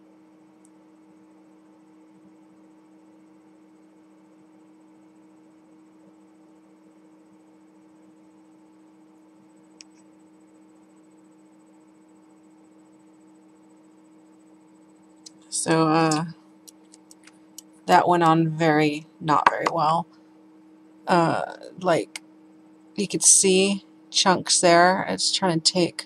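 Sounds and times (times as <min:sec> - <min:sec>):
low electrical hum: 0:00.0 - 0:26.0
small click: 0:09.8 - 0:10.1.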